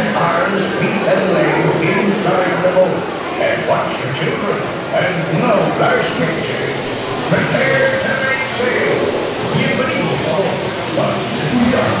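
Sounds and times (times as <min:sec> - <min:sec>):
man calling out wavering: 0:05.3 - 0:12.0.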